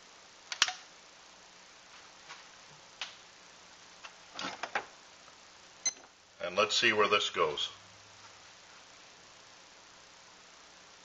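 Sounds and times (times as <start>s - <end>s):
sharp clicks: 0.5s - 0.8s.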